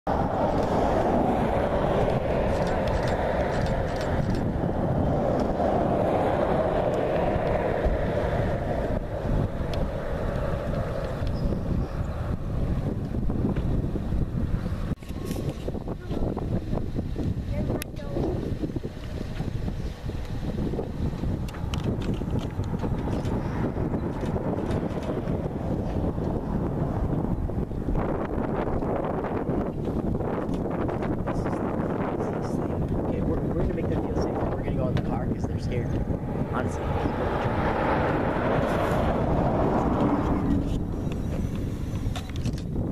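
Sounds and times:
wind blowing across microphone: 0:00.0 - 0:42.9.

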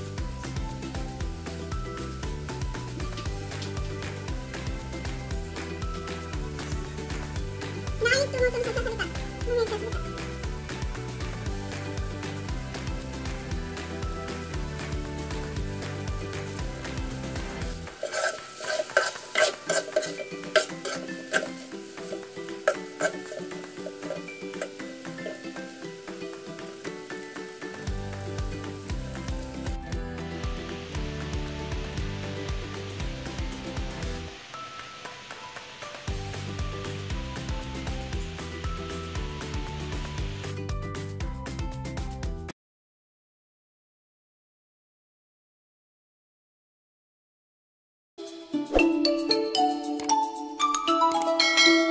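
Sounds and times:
sauce sizzling: 0:00.0 - 0:40.7
background music: 0:00.0 - 0:42.5, 0:48.2 - 0:51.9
utensil scraping a wok: 0:17.4 - 0:27.4.

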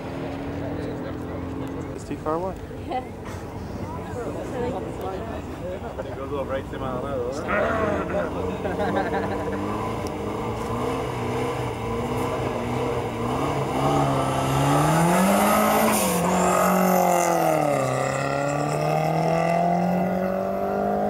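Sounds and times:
car engine revving: 0:07.4 - 0:21.0.

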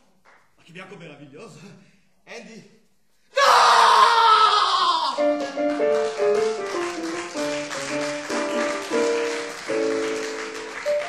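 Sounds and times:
person screaming: 0:03.3 - 0:05.2.

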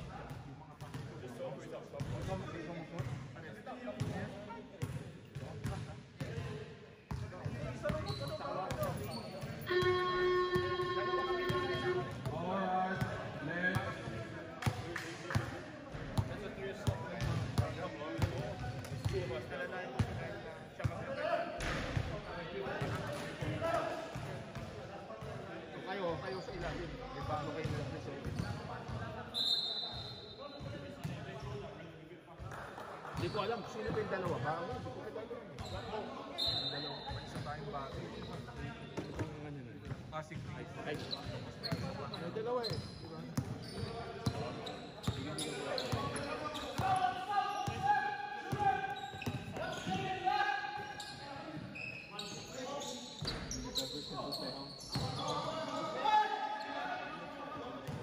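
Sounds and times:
player chatter: 0:07.3 - 0:58.0
steady buzzer tone: 0:09.7 - 0:12.1
basketball bouncing on court: 0:48.5 - 0:50.0.

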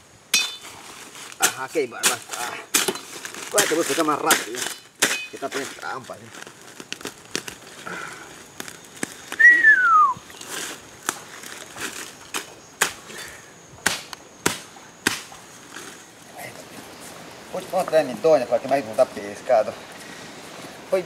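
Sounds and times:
rustling leaves: 0:00.0 - 0:21.0
stems and roots snapping: 0:01.2 - 0:09.5, 0:10.3 - 0:13.2
falling whistle: 0:09.4 - 0:10.2.

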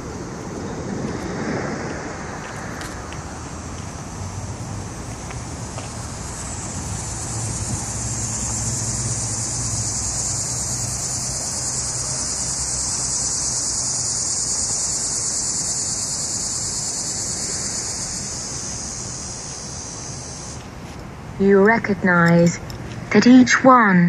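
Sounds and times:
insects buzzing: 0:00.0 - 0:23.2.

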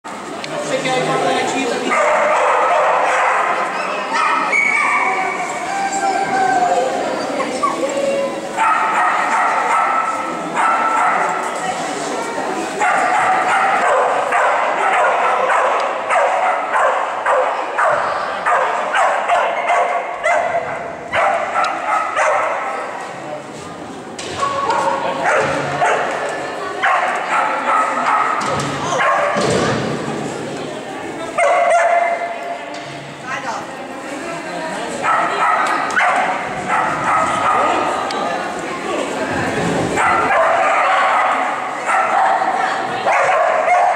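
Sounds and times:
dog barking: 0:01.9 - 0:05.0, 0:08.6 - 0:11.4, 0:12.8 - 0:22.7, 0:24.6 - 0:26.1, 0:26.8 - 0:29.4, 0:31.4 - 0:32.3, 0:35.0 - 0:37.8, 0:40.0 - 0:43.9.

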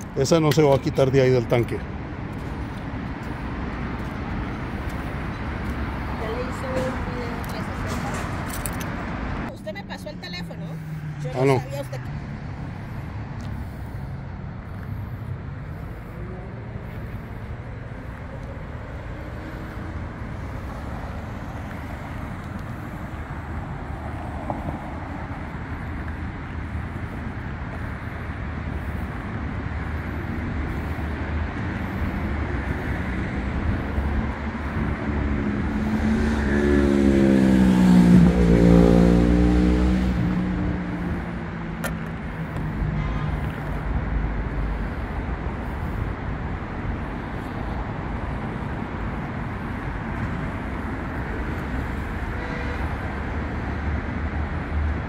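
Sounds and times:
road traffic rumble: 0:00.0 - 0:55.0
vehicle passing close by: 0:00.0 - 0:55.0.

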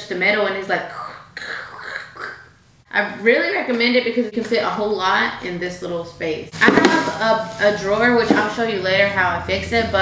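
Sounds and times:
woman imitating spoon scraping: 0:00.9 - 0:02.5.

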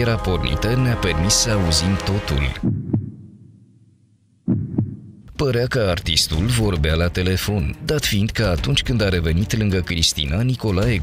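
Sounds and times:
heartbeat thumps: 0:02.6 - 0:03.6, 0:04.4 - 0:05.4.

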